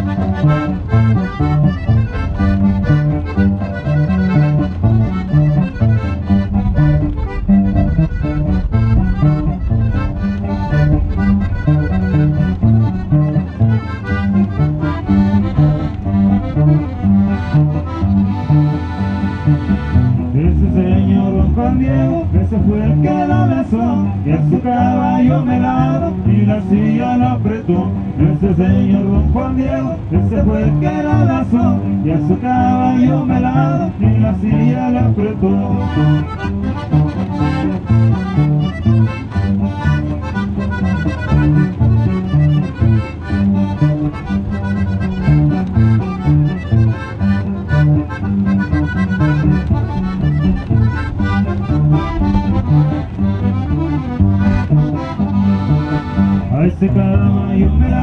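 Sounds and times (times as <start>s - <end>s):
accordion melody: 0.0s - 58.0s
rhythmic bass line: 0.0s - 58.0s.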